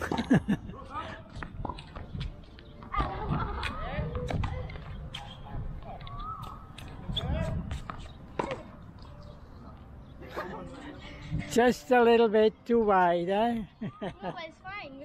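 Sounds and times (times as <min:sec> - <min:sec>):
tennis balls hitting court: 0:01.3 - 0:09.1.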